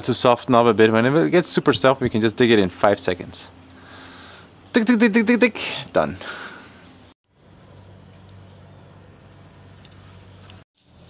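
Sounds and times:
low even hum: 0.0s - 11.0s
faint insects: 0.2s - 11.0s.

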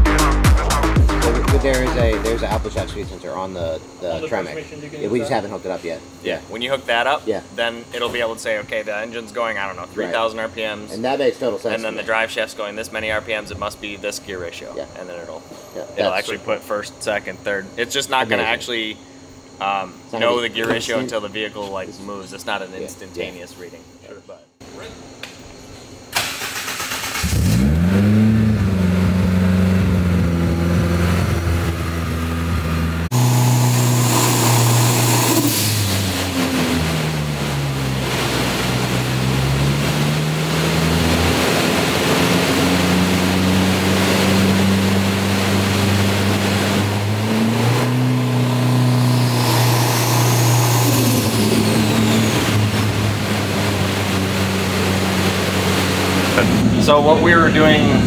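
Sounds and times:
turbocharged car engine running: 0.0s - 7.0s, 27.0s - 58.0s
high turbo whistle: 32.1s - 37.0s, 45.4s - 58.0s.

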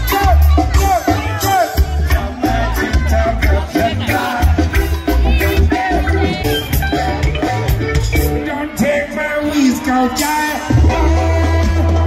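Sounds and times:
heavy bass line: 0.0s - 12.0s
live band music over loudspeakers: 0.0s - 12.0s
person singing: 0.0s - 12.0s.

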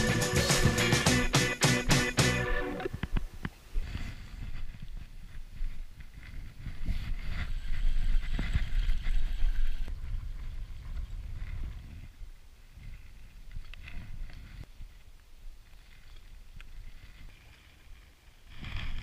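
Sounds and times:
wind buffeting microphone: 2.9s - 14.7s.

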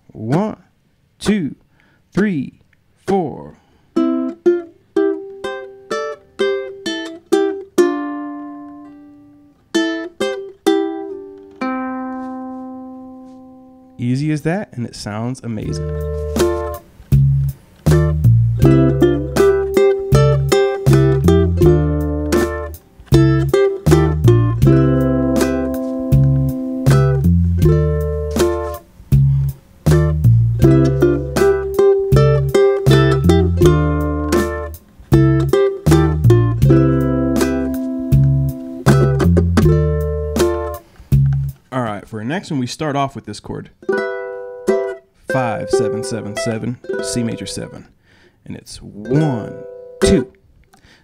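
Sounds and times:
ukulele playing: 4.0s - 14.0s, 15.6s - 41.6s, 43.8s - 47.9s, 48.9s - 50.4s
backing track with bass and drums: 15.6s - 41.6s.

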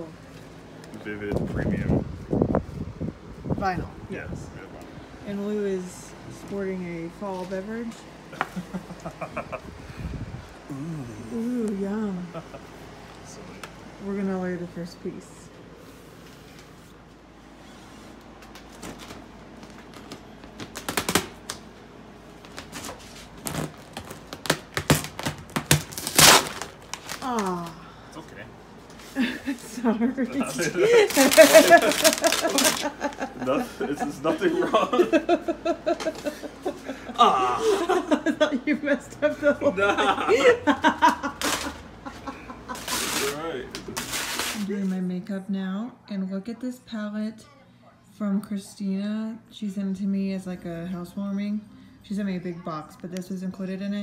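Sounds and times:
woman cackling laughter: 8.4s - 9.7s, 34.5s - 43.0s
vinyl film crinkling and clicking: 18.4s - 21.8s, 22.4s - 27.7s, 31.0s - 33.2s.

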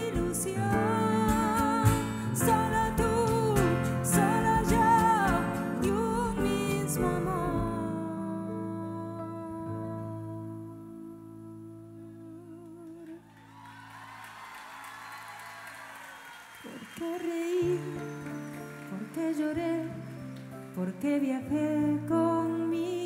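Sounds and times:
keyboard accompaniment: 0.0s - 13.0s
woman singing gently: 0.0s - 13.2s, 16.7s - 18.2s, 18.9s - 23.0s.

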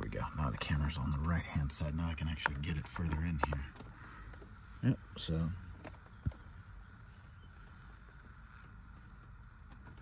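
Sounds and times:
faint low background rumble: 0.0s - 10.0s.

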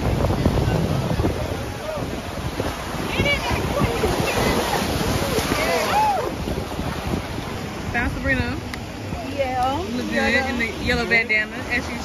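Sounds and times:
small waves washing ashore: 0.0s - 12.0s
wind buffeting microphone: 0.0s - 12.0s.

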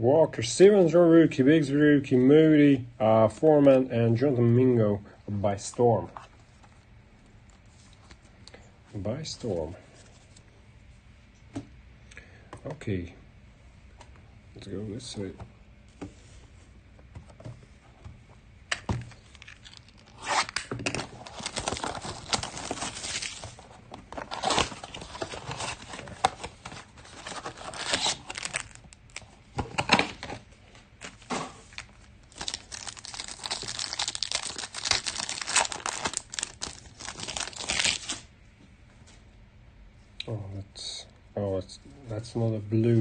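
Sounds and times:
plastic wrap and foil tearing: 19.1s - 23.6s, 24.2s - 29.3s, 31.0s - 38.3s.

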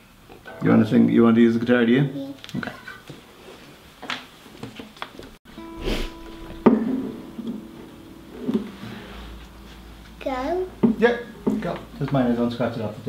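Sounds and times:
guitar strings strummed and ringing: 0.4s - 3.0s, 5.5s - 13.0s
knock on guitar body: 10.8s - 11.6s.

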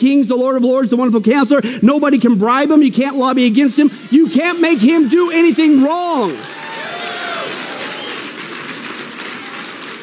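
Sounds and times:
audience applauding: 4.0s - 10.0s.

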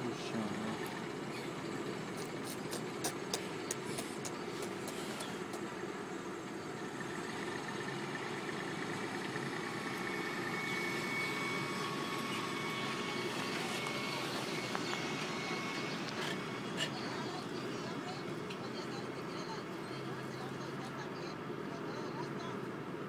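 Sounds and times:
diesel truck engine running: 0.0s - 23.0s.

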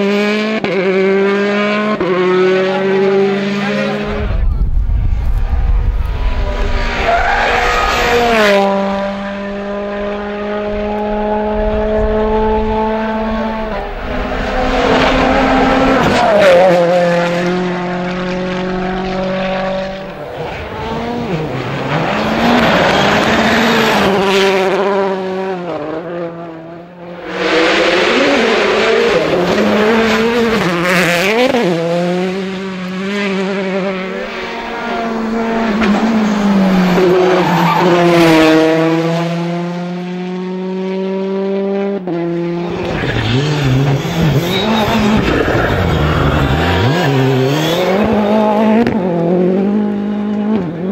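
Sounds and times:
rally car engines revving: 0.0s - 50.9s
tyres squealing and sliding: 42.9s - 47.8s.

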